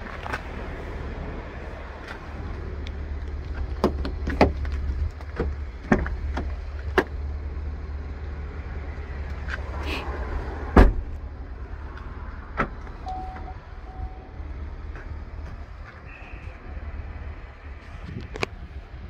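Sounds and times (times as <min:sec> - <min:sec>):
car door shutting: 0:10.7 - 0:11.2
short beeps: 0:13.0 - 0:14.3.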